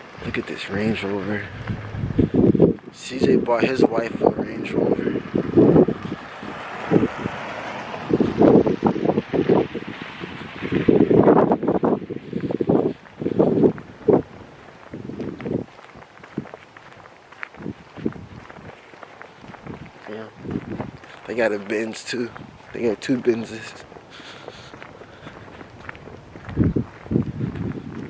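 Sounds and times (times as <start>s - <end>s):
wind on microphone: 0.0s - 28.0s.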